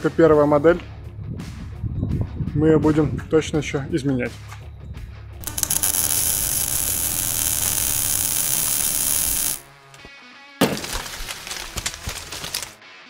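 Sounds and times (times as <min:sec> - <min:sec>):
loud steady hiss: 0:05.4 - 0:09.7.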